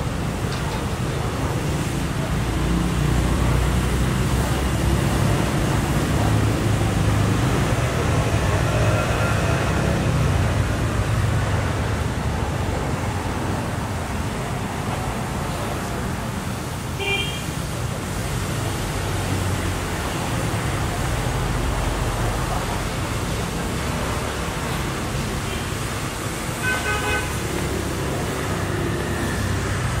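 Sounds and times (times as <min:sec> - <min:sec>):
street traffic: 0:00.0 - 0:30.0.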